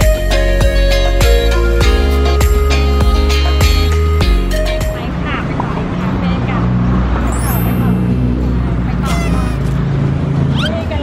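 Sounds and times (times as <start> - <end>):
street traffic rumble: 0.0 - 11.0
women's voices: 4.8 - 9.7.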